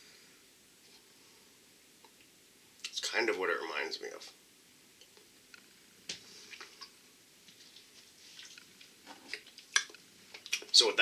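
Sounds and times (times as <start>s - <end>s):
mouth clicks and smacks: 7.8s - 10.7s.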